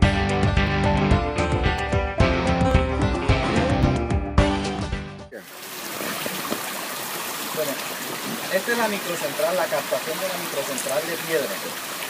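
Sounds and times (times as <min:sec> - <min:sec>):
guitar background music: 0:00.0 - 0:05.3
water rushing through channel: 0:05.4 - 0:12.0.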